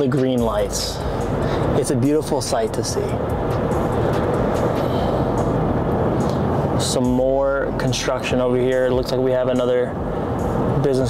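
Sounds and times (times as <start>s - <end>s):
car cabin road and engine noise: 0.0s - 11.0s.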